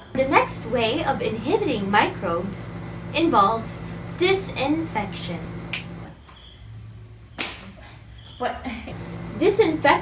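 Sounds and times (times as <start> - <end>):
crickets chirping: 6.1 - 8.9.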